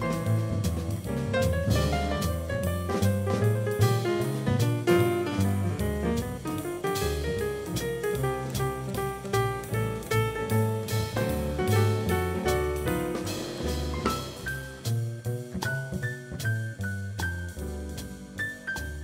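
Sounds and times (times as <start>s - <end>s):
drum kit: 0.0s - 19.0s
grand piano: 0.0s - 19.0s
plucked double bass: 0.0s - 19.0s.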